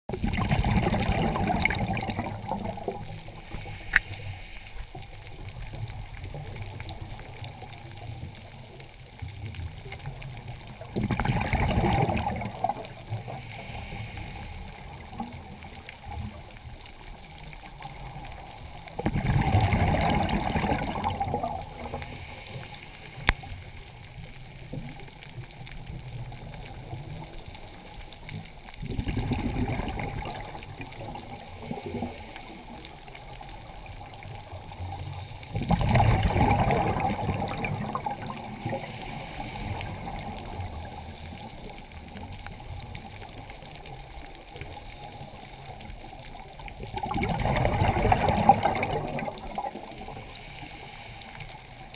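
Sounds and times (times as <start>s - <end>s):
bubbles from diver exhaling: 0.1s - 3.4s, 10.8s - 13.4s, 18.9s - 22.0s, 28.8s - 32.2s, 33.6s - 39.0s, 46.8s - 50.2s
steady regulator hiss: 3.2s - 5.8s, 13.2s - 15.2s, 21.7s - 24.4s, 31.4s - 33.8s, 38.4s - 41.6s, 49.9s - 51.9s.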